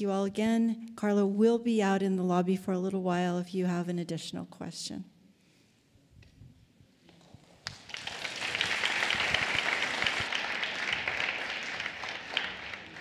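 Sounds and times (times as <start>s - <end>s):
audience applauding: 7.2s - 13.0s.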